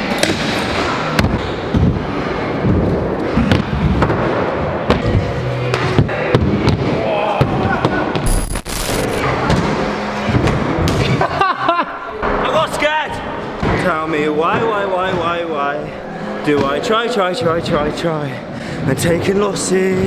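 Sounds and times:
music: 0.0s - 7.8s, 9.2s - 20.0s.

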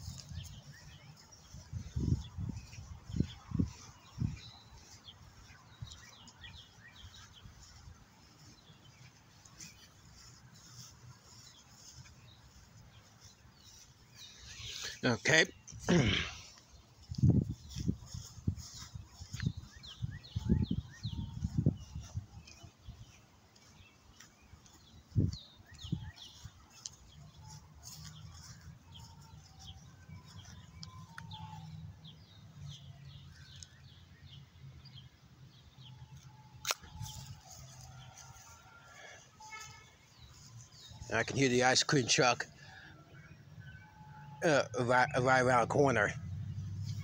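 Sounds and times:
birds chirping: 0.0s - 47.0s.

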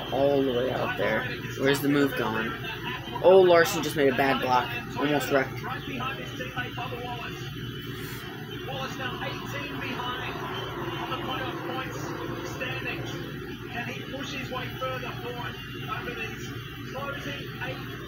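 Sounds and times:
commentators talking: 0.0s - 7.4s.

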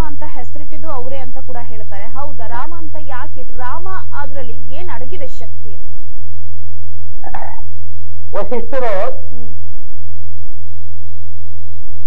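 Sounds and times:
man speaking: 7.2s - 7.6s, 8.3s - 9.5s.

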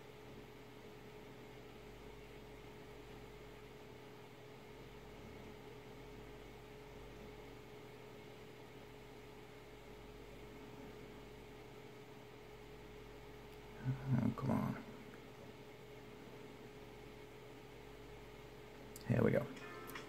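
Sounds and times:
low constant hum: 0.0s - 20.0s
microphone hiss: 0.0s - 20.0s.

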